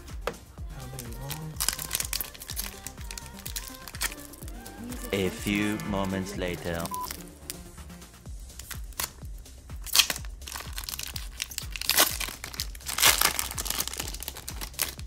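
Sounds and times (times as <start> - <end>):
foil pack tearing and crinkling: 1.0 - 4.5, 9.8 - 15.0.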